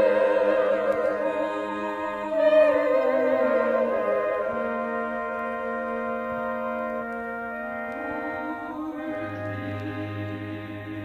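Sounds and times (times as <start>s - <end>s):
orchestra holding sustained chords: 0.0s - 11.0s.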